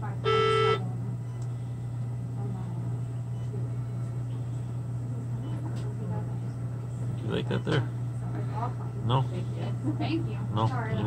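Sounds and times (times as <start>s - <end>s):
low hum of equipment: 0.0s - 11.0s.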